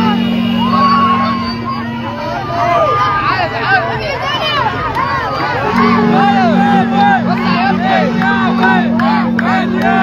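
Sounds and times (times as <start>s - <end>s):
crowd shouting and cheering: 0.0s - 10.0s
steady low hum: 5.6s - 10.0s.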